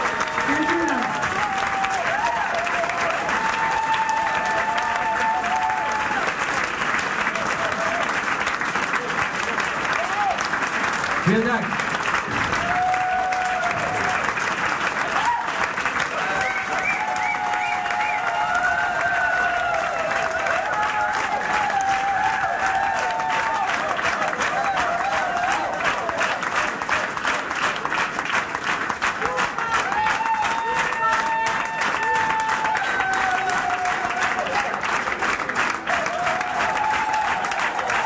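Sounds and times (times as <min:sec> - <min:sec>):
voices calling out and cheering: 0:00.0 - 0:06.3
audience applauding: 0:00.0 - 0:38.0.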